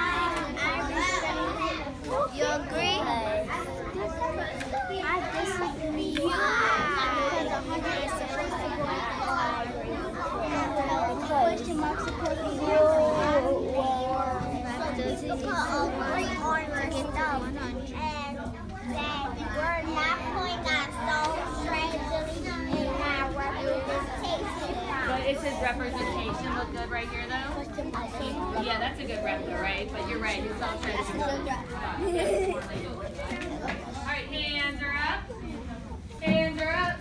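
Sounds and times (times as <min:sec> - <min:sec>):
young children talking: 0:00.0 - 0:37.0.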